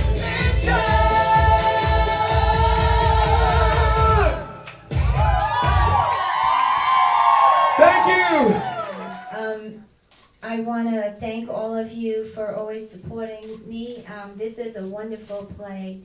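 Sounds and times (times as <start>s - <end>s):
person singing: 0.0s - 4.7s
pop backing track with dance beat: 0.0s - 6.4s.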